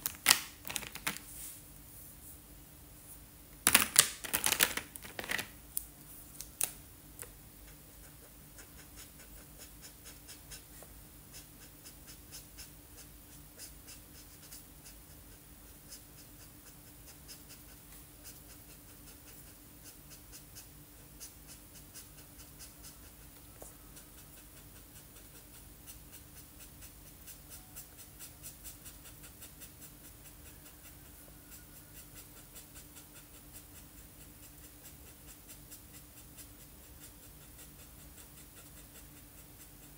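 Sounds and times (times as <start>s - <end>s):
faint steady hum: 0.0s - 39.9s
marker scratching on paper: 7.7s - 39.9s.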